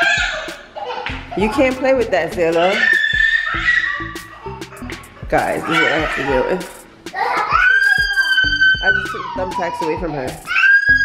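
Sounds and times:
toddler screaming: 0.0s - 1.1s, 2.6s - 4.8s, 5.5s - 11.0s
background music with steady beat: 0.0s - 11.0s.

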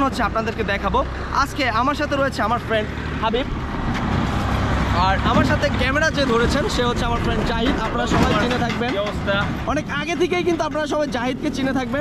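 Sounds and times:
road vehicle passing: 0.0s - 12.0s
man talking: 4.9s - 12.0s.

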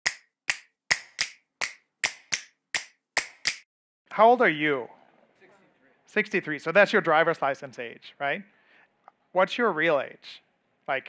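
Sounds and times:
sharp snapping clicks: 0.0s - 3.6s.

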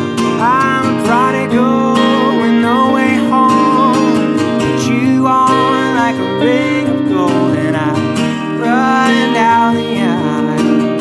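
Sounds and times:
acoustic guitar strumming: 0.0s - 11.0s
electric guitar: 0.0s - 11.0s
man singing: 0.0s - 11.0s.

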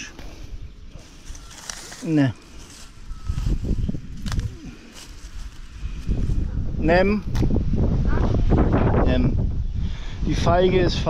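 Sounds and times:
sharp crackle: 1.0s - 5.8s
hand rummaging in dry twigs: 1.0s - 6.2s
wind rumble on microphone: 2.6s - 11.0s.

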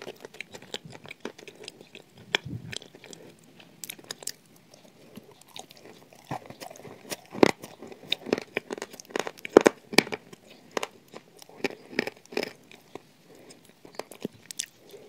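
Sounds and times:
biting and chewing crunchy biscuit: 0.0s - 15.0s.

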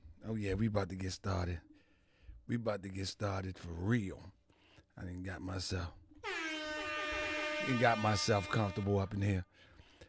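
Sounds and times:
steady horn-like tone: 6.2s - 9.3s.

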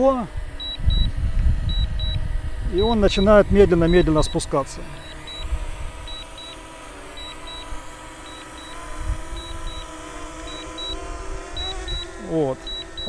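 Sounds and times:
drone propellers whining: 0.0s - 13.0s
short high beeps in pairs: 0.6s - 1.1s, 1.7s - 2.2s, 5.0s - 5.5s, 6.1s - 6.6s, 7.2s - 9.9s, 10.5s - 11.0s, 11.6s - 13.0s.

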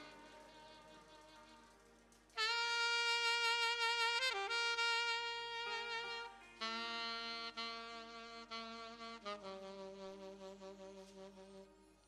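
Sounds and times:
saxophone solo: 0.0s - 12.0s.

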